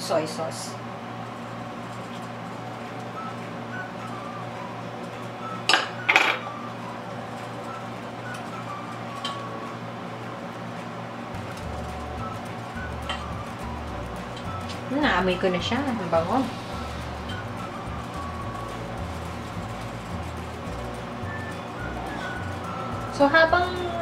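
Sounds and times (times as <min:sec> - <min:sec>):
soft background music: 0:00.0 - 0:24.0.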